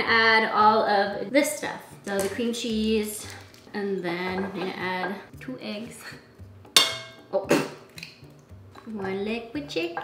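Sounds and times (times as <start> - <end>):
background music: 0.0 - 10.0.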